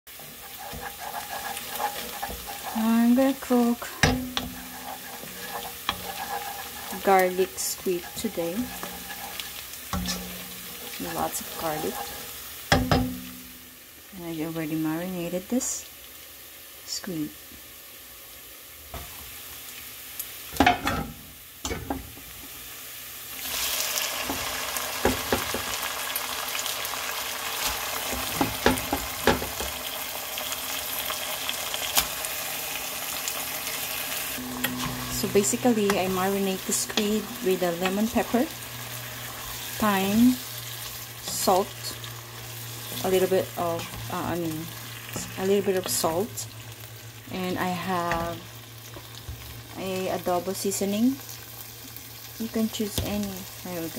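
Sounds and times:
wooden spoon stirring: 0.1 - 12.4
garlic sizzling in oil: 0.1 - 53.9
spoon knocking against pot: 4.0 - 4.6, 12.7 - 13.2.

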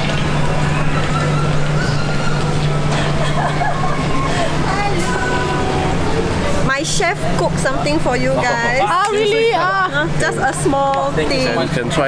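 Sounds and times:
indistinct chatter: 0.0 - 12.0
steady low hum: 0.0 - 12.0
loud excited greeting voices: 0.8 - 6.6, 8.2 - 11.8.

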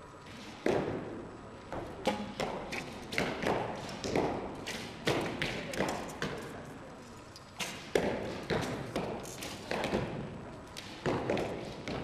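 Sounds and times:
arrows striking targets: 0.3 - 6.5.

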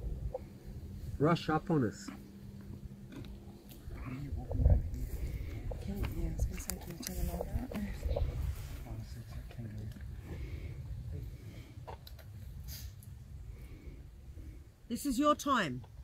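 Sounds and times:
steady low rumble: 0.0 - 15.2.

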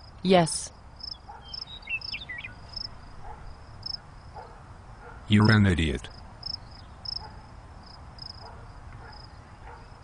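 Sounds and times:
crickets chirping: 0.0 - 4.6, 6.1 - 10.0.

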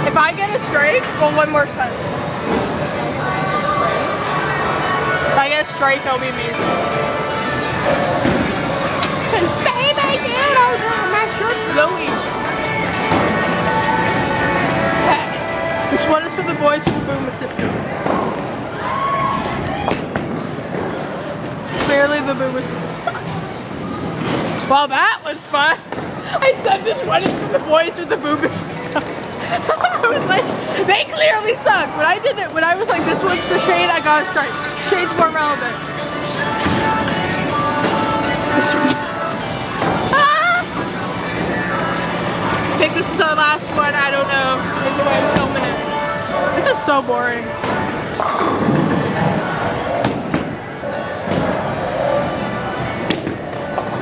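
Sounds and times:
background chatter: 0.0 - 54.0
background music: 0.0 - 54.0
bowling ball rolling: 6.6 - 15.4, 16.0 - 24.7, 27.0 - 27.6, 35.2 - 46.6, 47.5 - 54.0
bowling pins clattering: 36.4 - 42.8.

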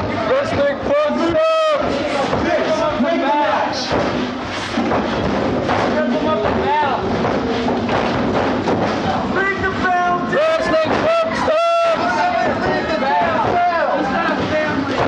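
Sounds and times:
scattered thuds: 0.0 - 15.0
men shouting: 9.3 - 15.0.

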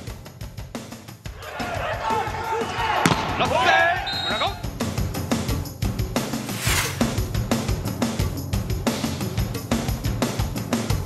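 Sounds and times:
players shouting: 1.4 - 4.1.

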